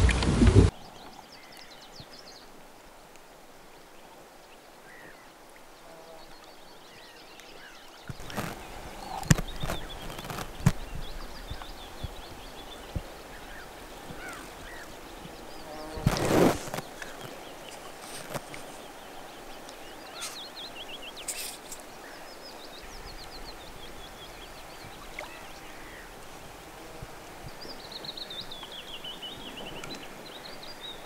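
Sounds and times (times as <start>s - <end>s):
faint bird chirps: 18.7s - 26.1s.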